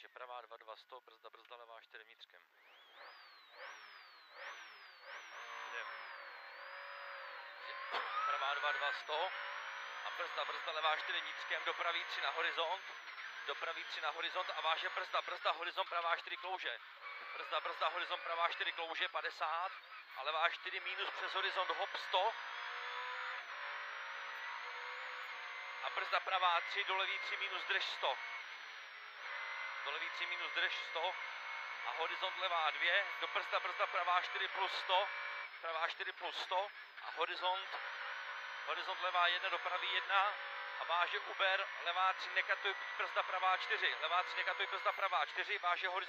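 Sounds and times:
rally car engine revving: 2.6s - 46.0s.

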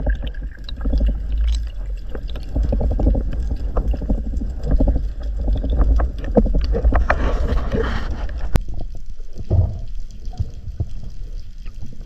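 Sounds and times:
low underwater rumble: 0.0s - 12.0s.

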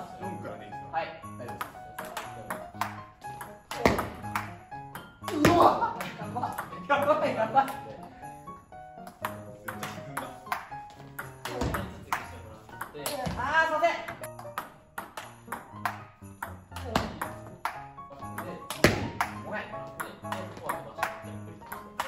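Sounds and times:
background music: 0.0s - 22.0s
table tennis ball clicking: 14.0s - 22.0s.

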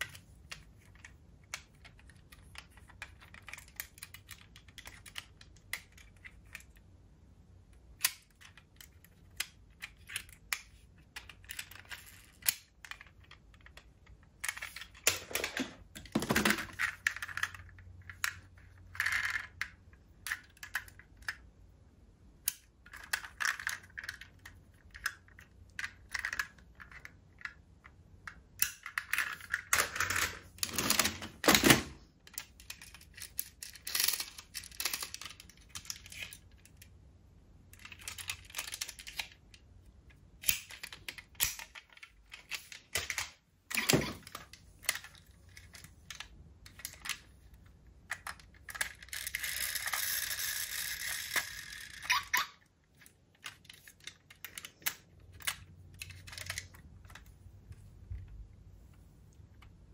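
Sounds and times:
metal toy cars clicking and clattering: 0.0s - 6.9s, 7.8s - 21.5s, 22.4s - 36.9s, 37.7s - 58.3s.

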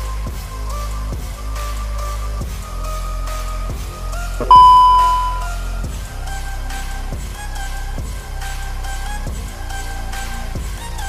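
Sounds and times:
background music: 0.0s - 11.0s
loud bell-like ding: 4.4s - 5.5s.

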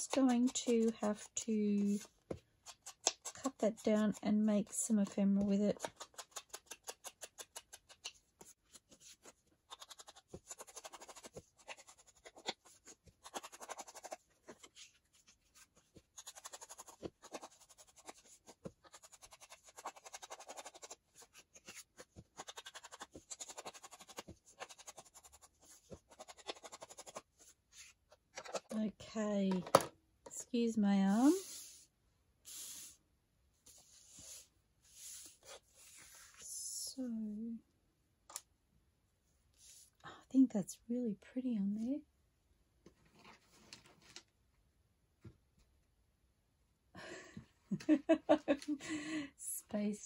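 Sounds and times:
ink tool scratching on paper: 4.9s - 27.5s.

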